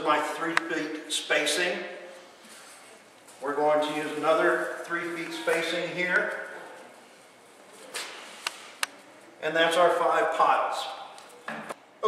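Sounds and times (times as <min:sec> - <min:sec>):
soft rustle of compound: 0:02.0 - 0:09.5.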